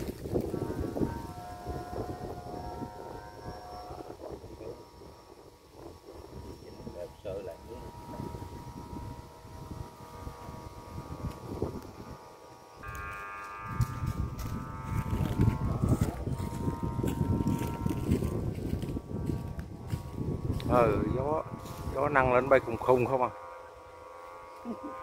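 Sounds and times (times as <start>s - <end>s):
wind buffeting microphone: 0.0s - 23.4s
faint steady hum: 0.0s - 25.0s.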